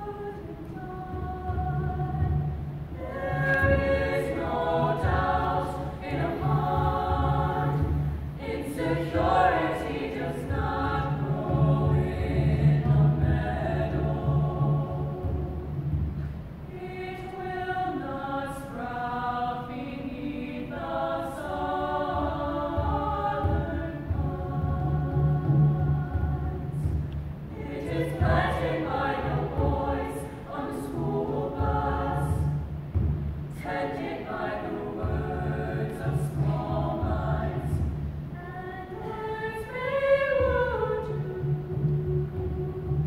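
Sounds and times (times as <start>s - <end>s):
girls' choir singing in harmony: 0.0s - 43.0s
hand drum: 0.6s - 17.0s, 22.1s - 38.4s.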